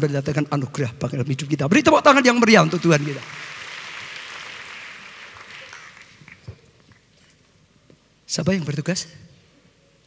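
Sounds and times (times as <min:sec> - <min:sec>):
congregation applause: 0:02.0 - 0:07.0.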